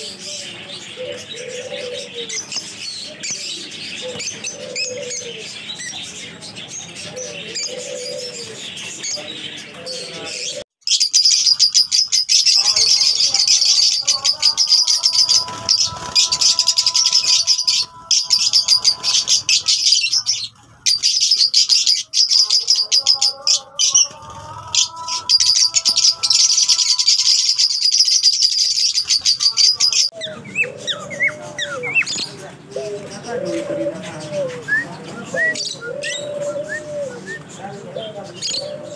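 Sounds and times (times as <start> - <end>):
lovebirds chattering: 0.0 - 38.9.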